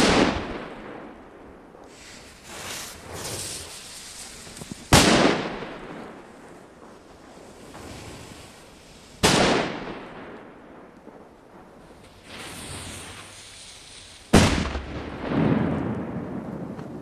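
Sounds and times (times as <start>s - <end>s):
faint hiss: 0.0s - 15.2s
firecrackers banging: 0.0s - 17.0s.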